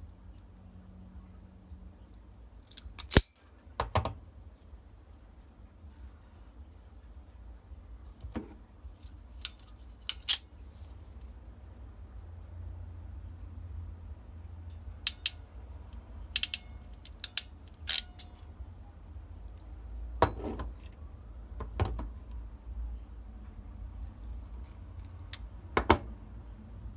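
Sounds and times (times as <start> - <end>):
low steady hum: 0.0 - 26.9
small tools being handled: 8.1 - 11.3.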